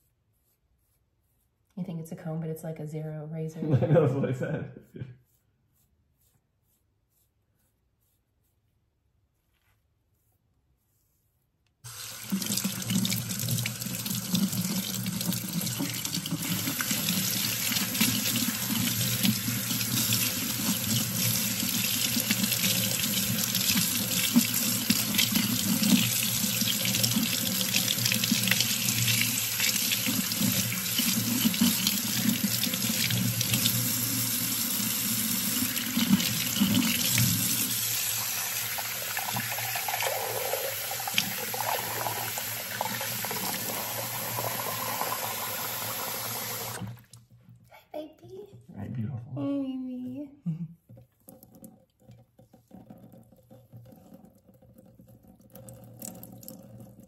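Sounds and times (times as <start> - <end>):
tap water splashing into sink: 11.9 - 33.8, 35.6 - 37.7, 51.3 - 57.0
water running into glass cup: 11.9 - 47.2.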